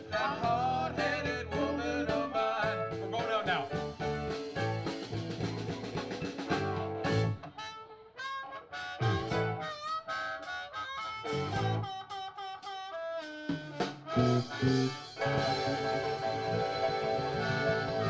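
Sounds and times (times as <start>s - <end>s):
live blues band playing: 0.0s - 18.0s
electric guitar: 3.7s - 9.9s, 11.0s - 12.4s, 13.6s - 18.0s
harmonica solo: 7.3s - 18.0s.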